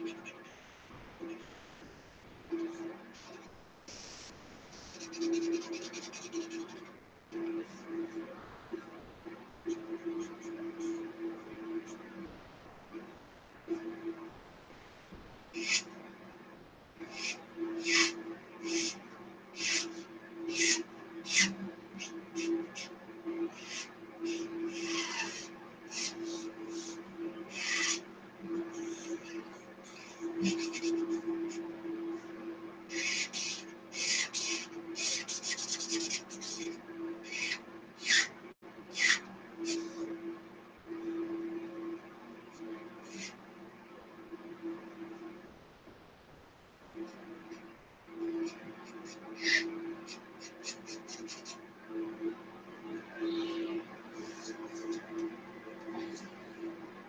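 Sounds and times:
marker scratching on paper: 3.2s - 7.0s, 15.6s - 16.0s, 17.0s - 40.1s, 43.0s - 43.4s, 48.4s - 51.6s, 53.3s - 56.4s.

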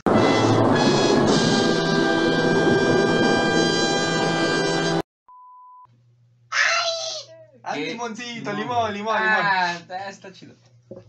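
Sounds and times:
orchestral brass and timpani chord: 0.0s - 5.0s.

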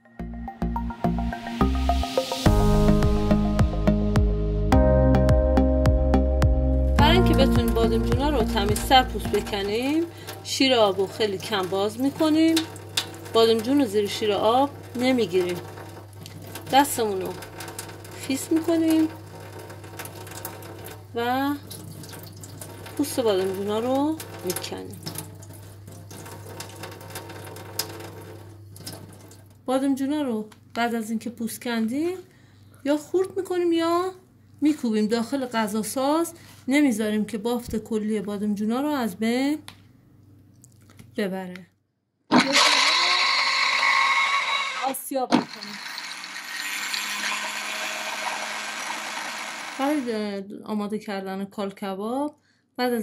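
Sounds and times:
tap water trickling into sink: 7.3s - 29.6s
wet clicks of skin peeling: 40.5s - 41.1s
electric grinder motor whining: 42.4s - 50.2s.

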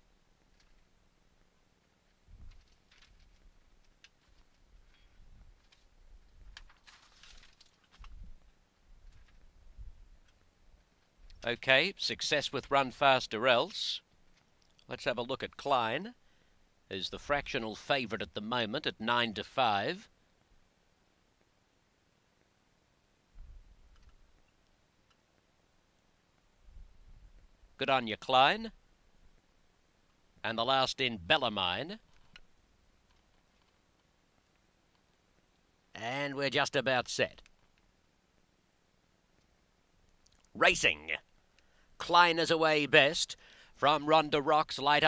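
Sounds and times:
faint low rumble: 0.0s - 11.9s, 20.4s - 27.8s
faint ticks: 14.1s - 14.9s, 41.3s - 41.8s.

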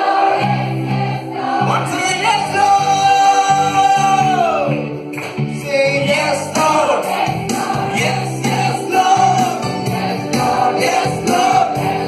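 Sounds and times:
group singing worship song: 0.0s - 4.8s, 6.1s - 12.0s
instruments with regular beat: 6.2s - 12.0s.

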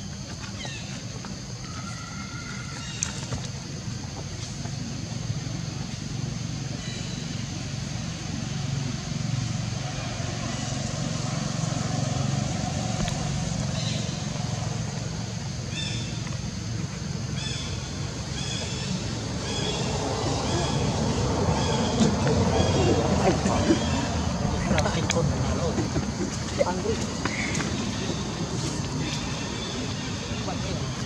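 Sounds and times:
distant traffic rumble: 0.0s - 31.0s
high-pitched insect hum: 0.0s - 31.0s.

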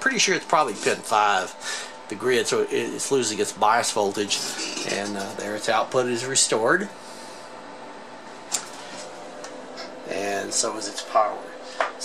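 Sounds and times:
electronic equipment hum and hiss: 0.0s - 12.0s.

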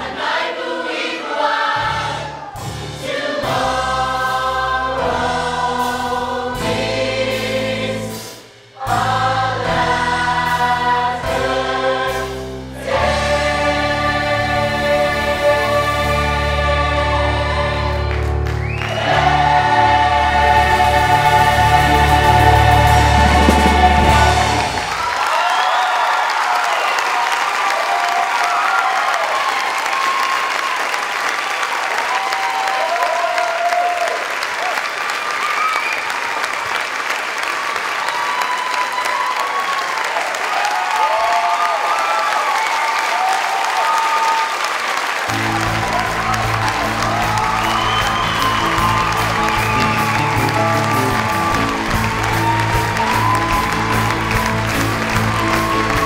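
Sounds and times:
audience applauding and cheering: 12.8s - 56.0s
whoops: 24.9s - 31.0s, 32.0s - 36.5s, 38.0s - 56.0s.

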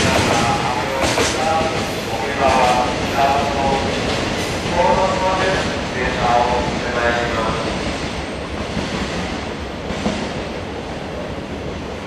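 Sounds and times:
train rumble and hiss: 0.0s - 12.0s
person speaking: 4.7s - 7.7s.

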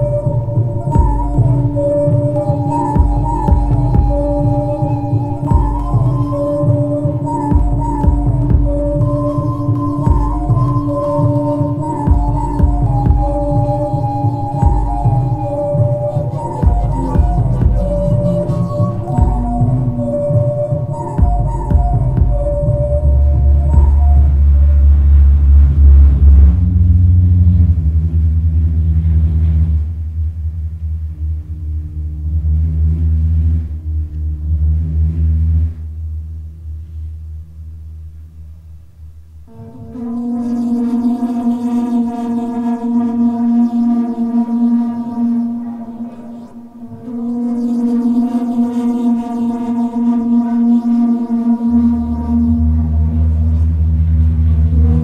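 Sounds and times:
deep electronic bass drone: 0.0s - 55.0s
sustained low synthesizer tones: 0.0s - 55.0s.

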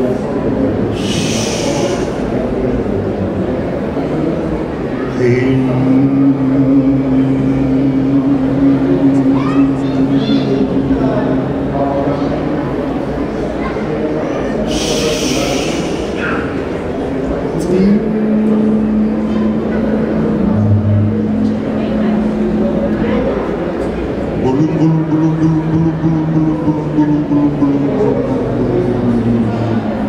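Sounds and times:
low vocal drone: 0.0s - 30.0s
man chanting into a microphone: 5.1s - 12.6s, 24.4s - 29.9s.

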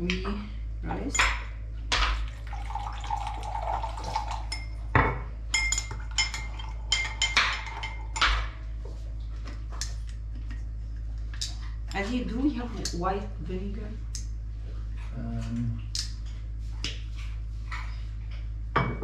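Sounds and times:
liquid pouring into glass: 2.3s - 4.8s
spoon clinking against glass: 4.2s - 4.8s, 5.5s - 8.3s.

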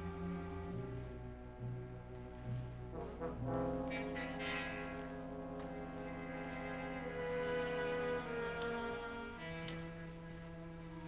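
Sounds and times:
low brass chord: 0.0s - 10.6s.

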